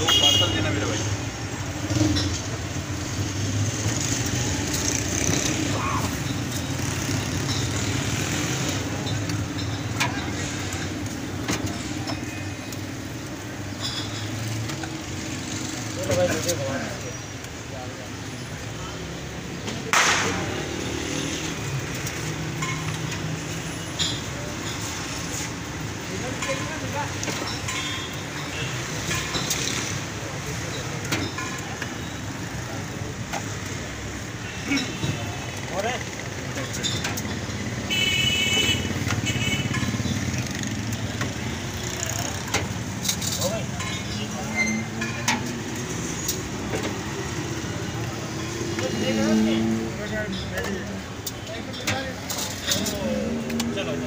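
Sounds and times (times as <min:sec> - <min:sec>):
traffic noise: 0:00.0 - 0:54.0
ladles and plates clinking: 0:03.5 - 0:17.4, 0:21.6 - 0:37.8, 0:38.7 - 0:49.7, 0:50.3 - 0:54.0.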